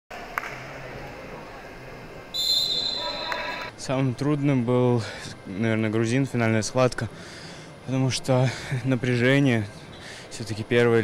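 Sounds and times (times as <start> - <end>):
long shrill whistle blast: 2.4 - 3.7.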